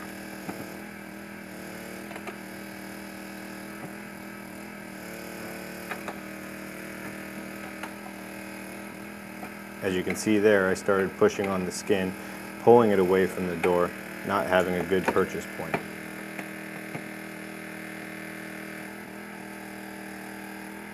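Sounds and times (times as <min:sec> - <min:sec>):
steady low hum: 0:03.6 - 0:20.9.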